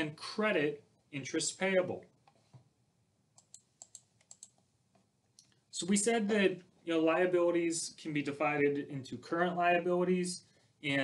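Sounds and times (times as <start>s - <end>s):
faint computer clicks: 3.4s - 4.7s.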